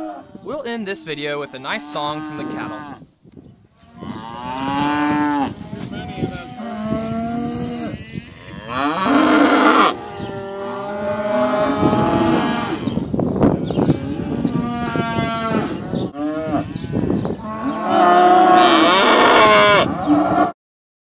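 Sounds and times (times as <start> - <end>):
cattle mooing: 1.6 - 3.0, 3.9 - 12.9, 13.7 - 20.5.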